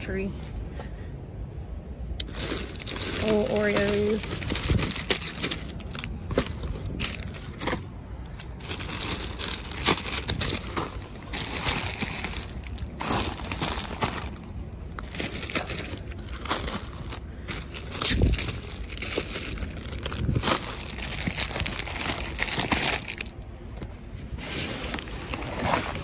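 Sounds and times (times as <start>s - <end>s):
plastic wrappers crinkling: 2.2s - 23.9s, 24.8s - 26.0s.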